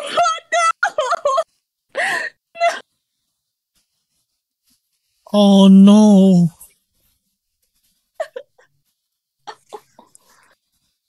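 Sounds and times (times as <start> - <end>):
person saying no: 5.3 - 6.6.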